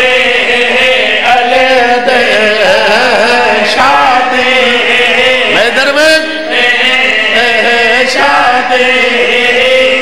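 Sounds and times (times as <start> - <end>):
man chanting through loudspeaker: 0.0 - 10.0.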